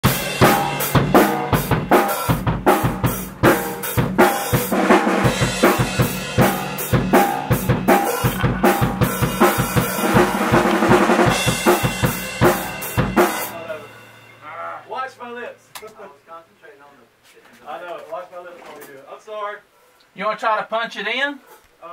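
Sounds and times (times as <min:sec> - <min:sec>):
drum kit playing a beat: 0:00.0 - 0:16.0
faint other instruments: 0:00.0 - 0:16.6.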